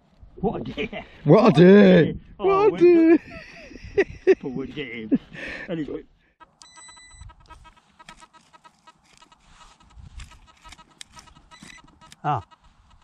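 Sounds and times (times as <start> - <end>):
metal detector beeping: 6.4 - 13.0.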